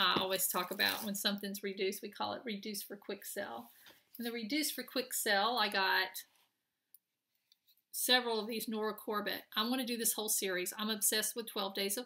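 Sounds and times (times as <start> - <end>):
woman's voice: 0.0 - 6.3, 8.0 - 12.0.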